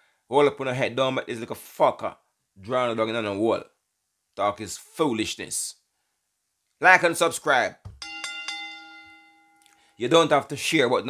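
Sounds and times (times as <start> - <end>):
bell-like chime ringing: 8.0 - 10.0.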